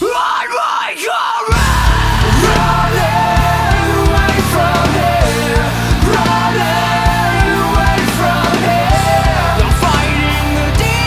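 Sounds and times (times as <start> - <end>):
hard rock band playing: 1.6 - 11.0.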